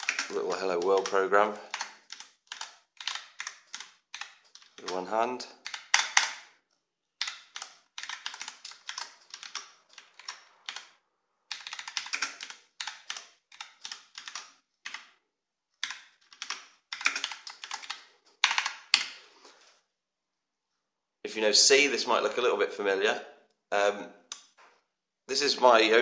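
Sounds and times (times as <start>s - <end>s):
computer keyboard typing: 0.0s - 6.6s, 7.2s - 15.2s, 15.8s - 19.2s.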